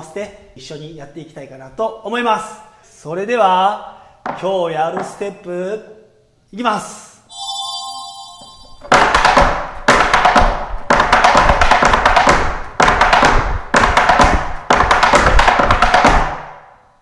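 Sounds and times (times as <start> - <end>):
tap shoes clicking on board: 4.2 - 5.2, 8.9 - 16.5.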